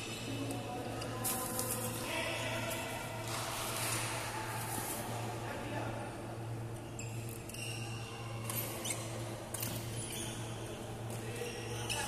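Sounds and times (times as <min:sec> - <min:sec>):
low hum in hall: 0:00.0 - 0:12.0
shoes squeaking on court floor: 0:06.8 - 0:12.0.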